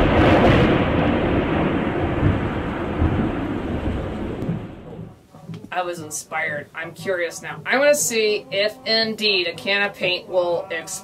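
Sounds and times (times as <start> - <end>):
thunder crash and rumble: 0.0 - 5.2.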